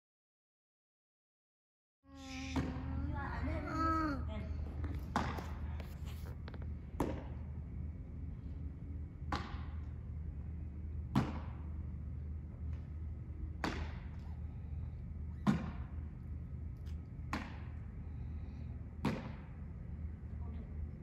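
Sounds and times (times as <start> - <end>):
steady low hum: 2.1 - 21.0.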